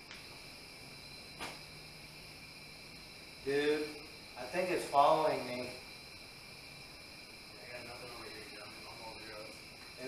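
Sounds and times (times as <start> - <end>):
crickets trilling: 0.0 - 10.0
soft scuff: 1.4 - 1.7.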